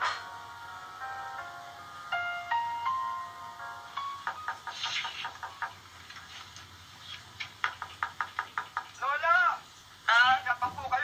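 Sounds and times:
knocking on a door: 0:04.2 - 0:05.9, 0:07.6 - 0:09.0.

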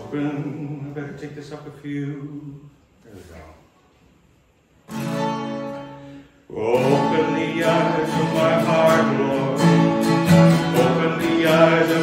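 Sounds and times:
acoustic guitar chord strummed: 0:04.8 - 0:12.0.

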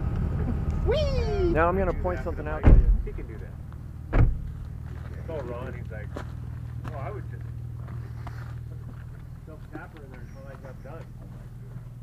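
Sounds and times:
steady low hum: 0:00.0 - 0:12.0
sharp thump: 0:02.6 - 0:03.2, 0:04.1 - 0:04.5
muffled conversation: 0:04.9 - 0:11.9.

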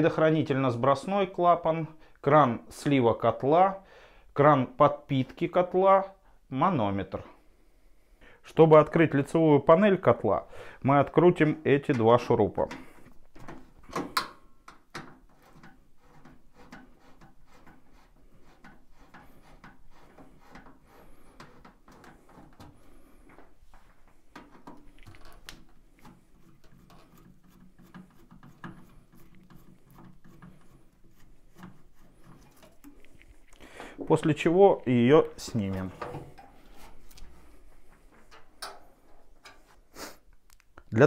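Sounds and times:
screwdriver ticking and scraping: 0:14.2 - 0:23.4, 0:24.3 - 0:33.6.

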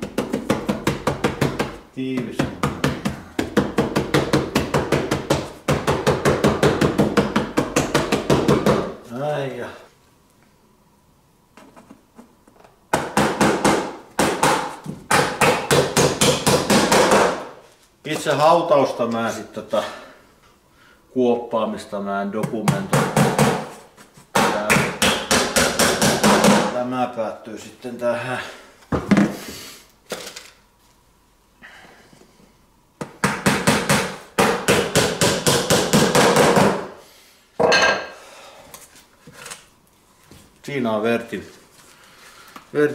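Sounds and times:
hammer nailing wooden box: 0:00.0 - 0:08.9, 0:12.9 - 0:17.5, 0:22.7 - 0:23.7, 0:24.3 - 0:26.7, 0:33.1 - 0:36.9.

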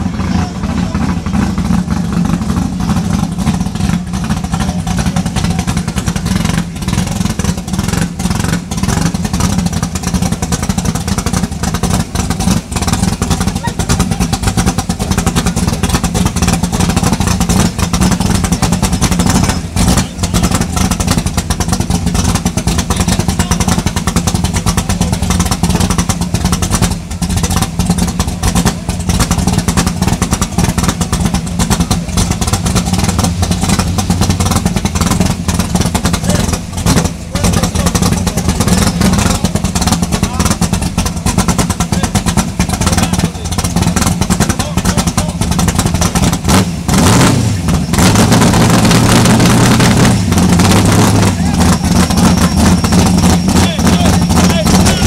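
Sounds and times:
spectators' voices: 0:00.0 - 0:08.2, 0:30.5 - 0:45.6
drag car engine idling: 0:00.0 - 0:55.0.

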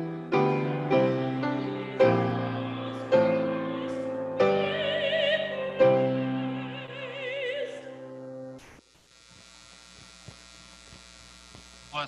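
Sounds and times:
electrical hum and buzz: 0:00.0 - 0:12.0.

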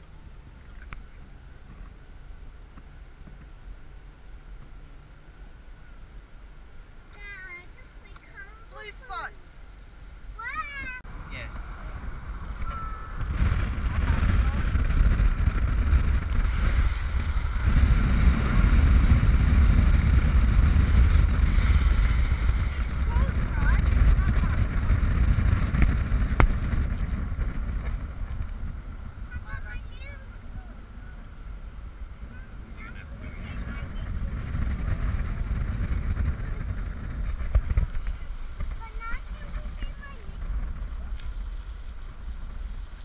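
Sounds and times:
road noise: 0:00.0 - 0:43.0
wind buffeting microphone: 0:10.4 - 0:43.0.

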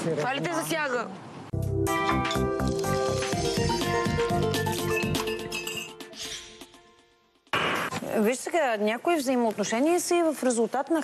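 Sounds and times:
logo jingle music: 0:01.6 - 0:07.5.

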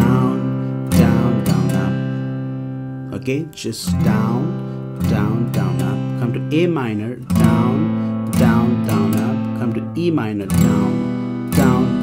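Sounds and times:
acoustic guitar chord strum: 0:00.0 - 0:12.0.

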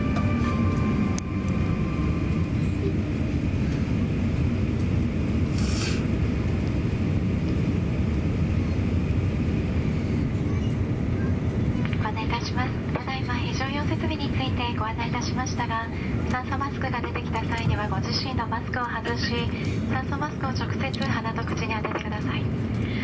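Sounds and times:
airliner cabin low rumble: 0:00.0 - 0:23.0
safety announcement voice: 0:11.8 - 0:22.5.

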